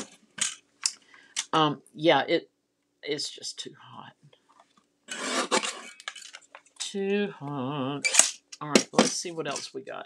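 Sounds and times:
paper trimmer blade scraping: 0:05.1 - 0:05.9.

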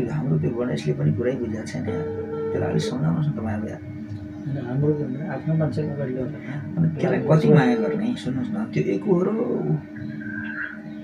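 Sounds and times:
man talking: 0:00.0 - 0:03.8, 0:04.5 - 0:09.8
steady low hum: 0:00.0 - 0:11.0.

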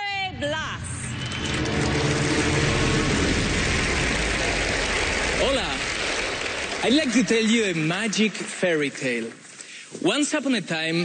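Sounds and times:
audience applauding and cheering: 0:01.0 - 0:09.8.

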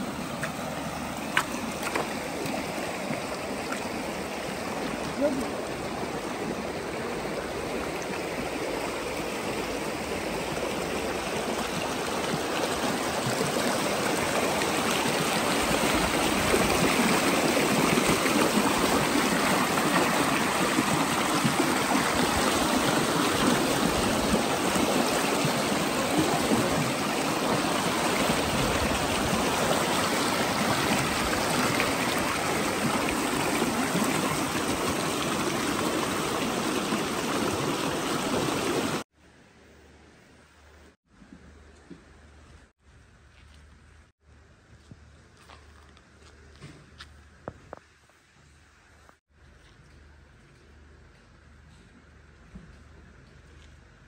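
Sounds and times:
stream rushing over stones: 0:00.0 - 0:39.1.

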